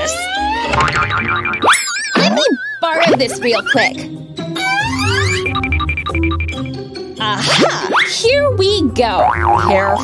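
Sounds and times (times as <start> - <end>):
cartoon rising tone: 0.0 - 3.8, 4.6 - 5.8
wobbling cartoon tone: 0.0 - 4.0, 4.6 - 6.5, 9.2 - 10.0
background music: 0.0 - 10.0.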